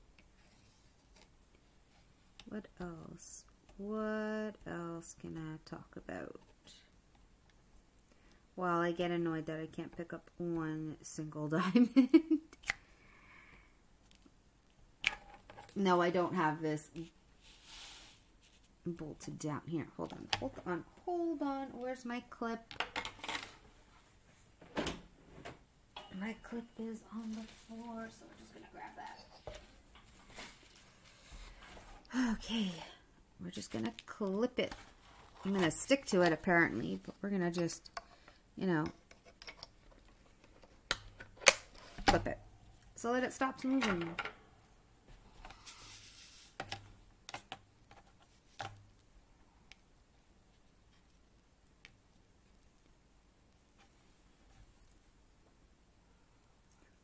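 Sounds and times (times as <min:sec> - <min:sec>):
soft rustle: 0:00.2 - 0:03.2, 0:15.5 - 0:19.2, 0:26.2 - 0:37.4, 0:45.0 - 0:46.6
rustle of handling: 0:17.0 - 0:18.8, 0:26.5 - 0:32.8, 0:45.0 - 0:49.0.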